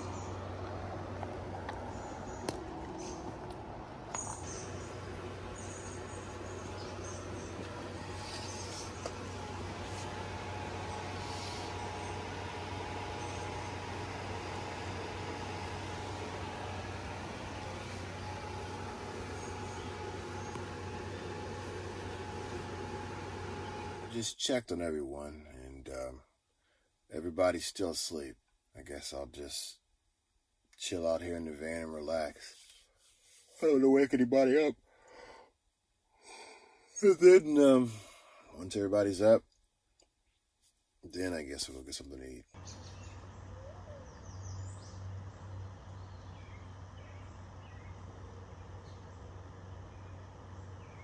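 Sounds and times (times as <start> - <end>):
electric blower fan whirring: 0.0 - 24.3, 42.6 - 51.0
window air conditioner humming: 0.0 - 26.2, 27.1 - 39.4, 41.1 - 51.0
faint steady whine: 0.0 - 29.8, 41.0 - 51.0
man breathing out: 34.9 - 37.0.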